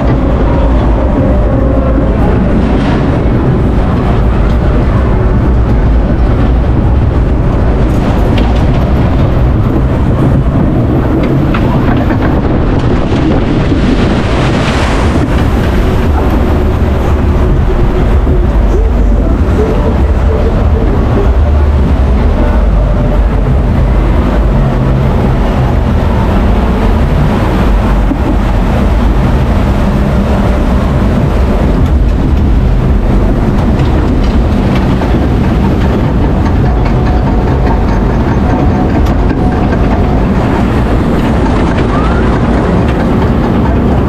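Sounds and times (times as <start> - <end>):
boat splashing through water: 0.0 - 44.0
low rumble of boat in water: 0.0 - 44.0.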